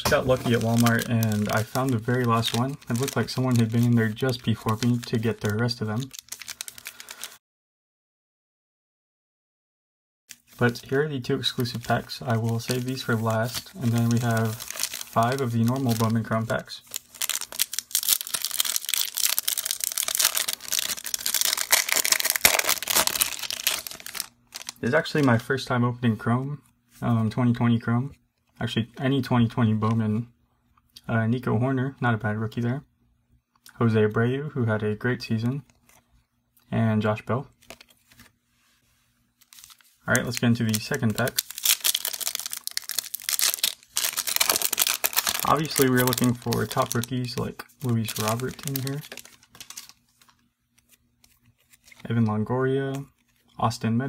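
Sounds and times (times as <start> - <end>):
plastic wrapper tearing and crinkling: 0.0 - 7.4, 11.4 - 24.8, 39.4 - 52.0.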